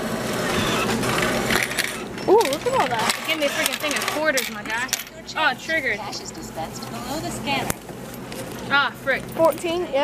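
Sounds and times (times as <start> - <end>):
cash machine whirring: 0.0 - 7.6.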